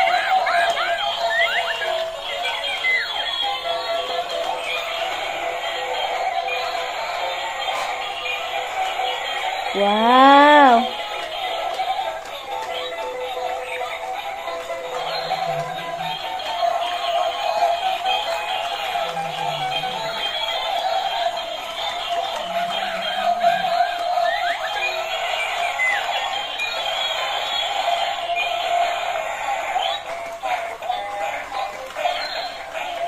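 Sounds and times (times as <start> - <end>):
tinny electronic toy music: 0.0 - 33.0.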